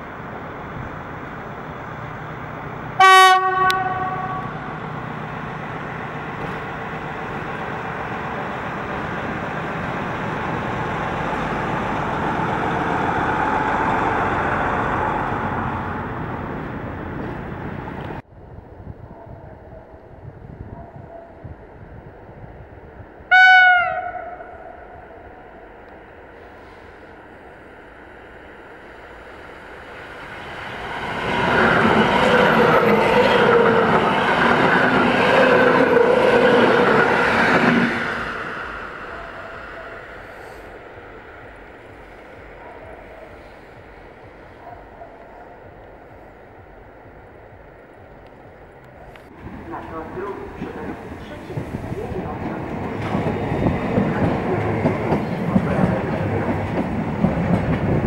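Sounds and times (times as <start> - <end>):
locomotive and coaches rolling past: 0.0 - 58.0
train horn blast: 3.0 - 4.8, 23.3 - 25.0.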